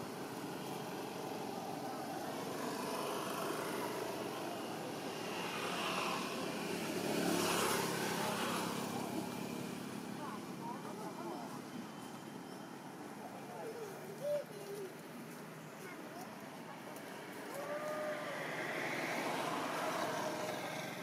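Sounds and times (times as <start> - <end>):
motor vehicle passing: 0.0 - 11.5, 16.7 - 21.0
outdoor background noise: 0.0 - 21.0.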